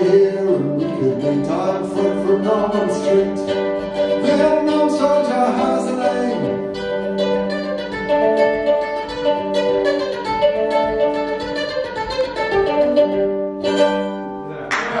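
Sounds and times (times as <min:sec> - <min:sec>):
plucked string instrument: 0:00.0 - 0:15.0
applause: 0:14.7 - 0:15.0.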